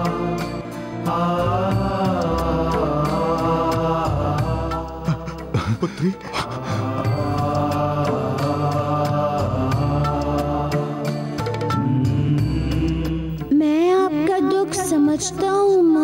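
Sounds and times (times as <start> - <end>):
chant-like devotional music: 0.0 - 16.0.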